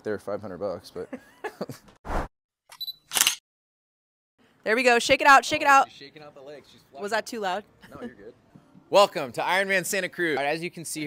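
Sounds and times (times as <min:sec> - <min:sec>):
camera shutter click: 0:02.7 - 0:03.4
sharp camera click: 0:02.7 - 0:03.4.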